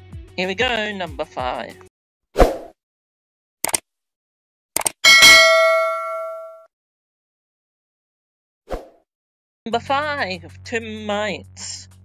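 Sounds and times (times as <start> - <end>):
bell ding: 5.0 - 6.7.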